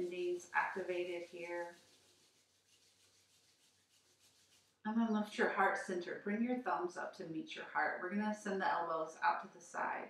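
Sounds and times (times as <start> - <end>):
palms rubbing together: 0.0 - 5.1.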